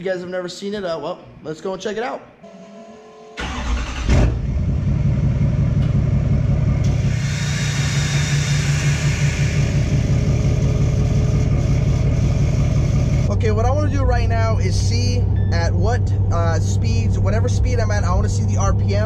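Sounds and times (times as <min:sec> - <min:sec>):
diesel engine cranking and idling: 0:03.4 - 0:19.0
high hiss: 0:07.0 - 0:10.1.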